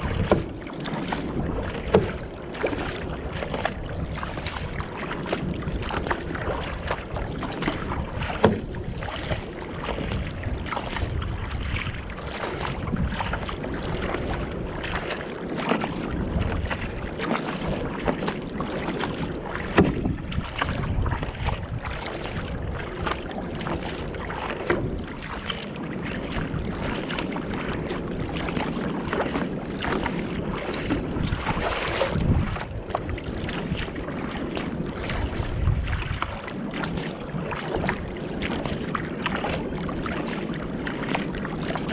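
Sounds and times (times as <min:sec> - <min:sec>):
water splashing against boat bow: 0:00.0 - 0:41.9
wind on microphone: 0:00.0 - 0:41.9.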